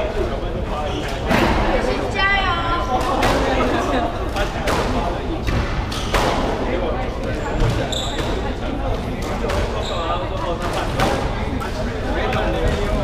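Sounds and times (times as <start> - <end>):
shoes squeaking on wooden floor: 7.4 - 8.4.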